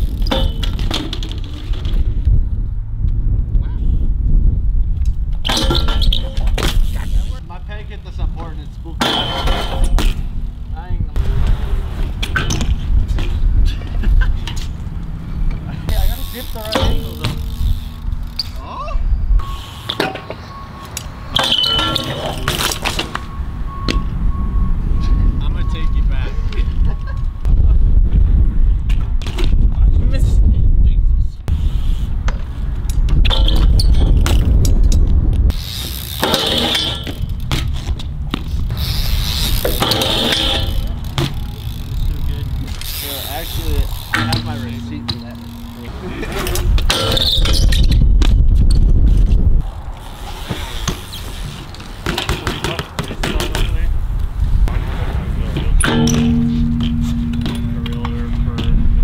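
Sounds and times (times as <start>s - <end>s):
bike landings: 0.0s - 2.5s, 4.9s - 25.1s, 31.6s - 59.0s
bike tyres rolling on concrete: 0.0s - 25.1s, 31.2s - 59.0s
steady low rumble: 1.6s - 5.5s, 9.8s - 19.5s, 37.0s - 50.0s, 53.9s - 59.0s.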